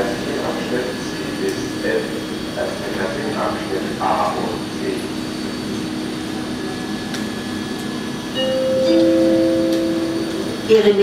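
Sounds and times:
train electrical hum: 0:00.0 - 0:11.0
two-note announcement chime: 0:08.3 - 0:11.0
spoken announcement: 0:09.0 - 0:11.0.

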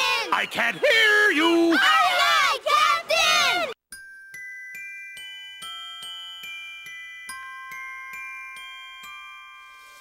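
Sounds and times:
chorus of voices shouting: 0:00.0 - 0:03.8
rising bell-like chimes: 0:03.9 - 0:10.0.

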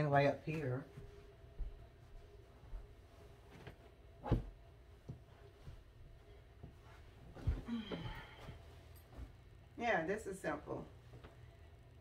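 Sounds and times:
cushion thumping on a sofa: 0:03.6 - 0:05.2.

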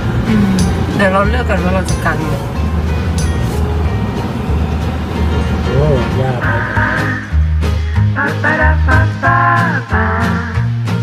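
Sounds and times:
car driving rumble: 0:00.0 - 0:08.2
background music with bass line: 0:00.0 - 0:11.0.

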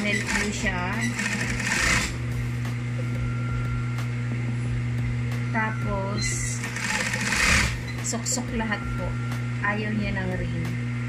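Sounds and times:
sewing machine stitching: 0:00.0 - 0:02.2, 0:06.6 - 0:07.8
sewing machine motor humming: 0:00.0 - 0:02.4, 0:06.3 - 0:08.2.

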